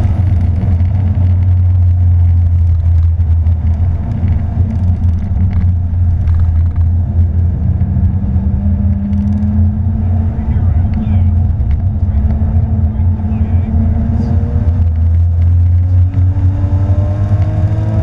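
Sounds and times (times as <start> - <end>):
car engine drone inside cabin: 0.0 - 18.0
tyre road noise: 0.0 - 18.0.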